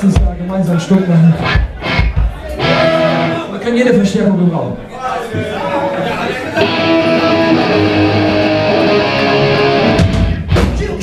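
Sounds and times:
ska-punk band playing live: 0:01.2 - 0:03.5, 0:06.6 - 0:11.0
electric guitar: 0:01.4 - 0:03.4, 0:06.6 - 0:11.0.

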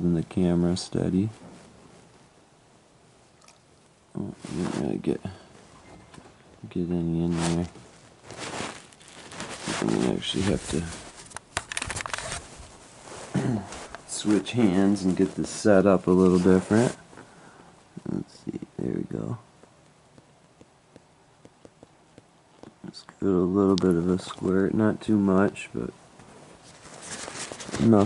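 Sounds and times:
man talking: 0:00.0 - 0:01.4, 0:04.1 - 0:05.5, 0:06.6 - 0:07.8, 0:09.7 - 0:11.1, 0:13.4 - 0:17.0, 0:18.0 - 0:19.4, 0:22.8 - 0:26.0, 0:27.7 - 0:28.0
towel and camera rustling: 0:04.2 - 0:06.4, 0:07.0 - 0:17.3, 0:26.1 - 0:28.0.

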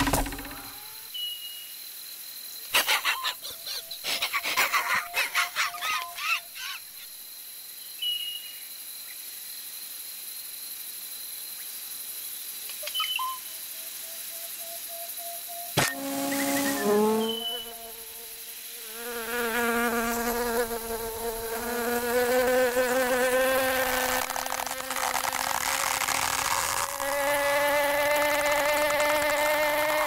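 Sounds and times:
bird chirps: 0:12.8 - 0:13.6, 0:16.4 - 0:17.9
quick clicks and crackles: 0:24.0 - 0:27.1.

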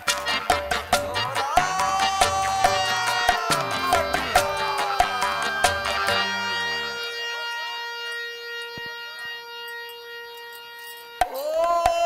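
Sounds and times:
faint wavering notes: 0:01.0 - 0:12.0
sustained wind instrument note: 0:01.0 - 0:12.0.

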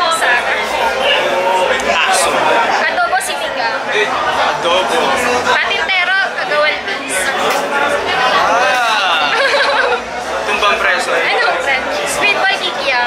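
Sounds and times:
background chatter: 0:00.0 - 0:13.0
people talking close up: 0:00.0 - 0:13.0.

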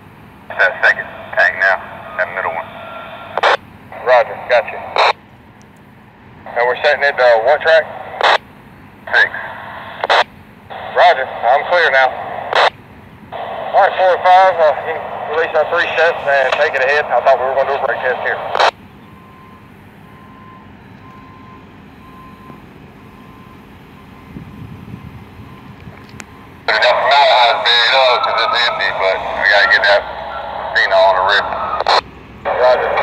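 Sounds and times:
diesel locomotive engine rumbling: 0:00.0 - 0:33.0
radio hiss: 0:00.4 - 0:05.2, 0:06.4 - 0:08.4, 0:09.0 - 0:18.8, 0:26.6 - 0:33.0
person speaking over radio: 0:00.5 - 0:05.2, 0:06.5 - 0:08.4, 0:09.1 - 0:12.7, 0:13.4 - 0:18.7, 0:26.7 - 0:33.0
radio squelch burst: 0:00.5 - 0:05.2, 0:06.5 - 0:08.4, 0:09.1 - 0:18.8, 0:26.6 - 0:33.0.

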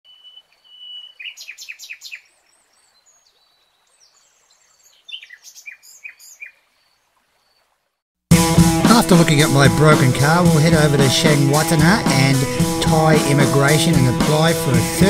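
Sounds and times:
faint bird chirping: 0:00.1 - 0:08.0.

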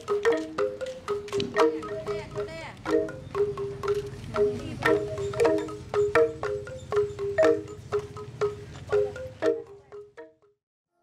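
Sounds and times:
gongs struck in interlocking rhythm: 0:00.0 - 0:10.6.

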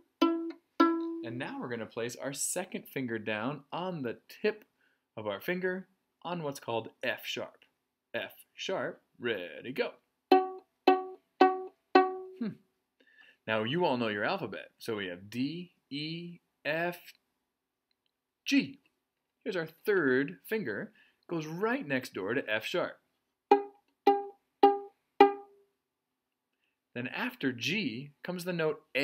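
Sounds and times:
violin plucked pizzicato: 0:00.0 - 0:01.4, 0:10.3 - 0:12.5, 0:23.5 - 0:25.6.

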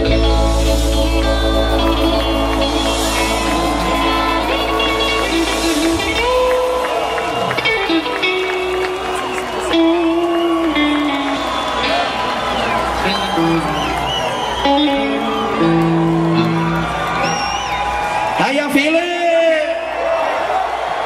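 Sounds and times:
deep bass drone: 0:00.0 - 0:08.4
electric guitar notes and bends: 0:00.0 - 0:18.0
crowd cheering: 0:00.0 - 0:21.0.

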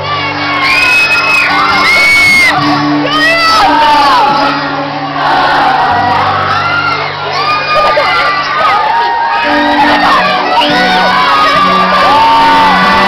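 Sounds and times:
crowd screaming and singing: 0:00.0 - 0:13.0.

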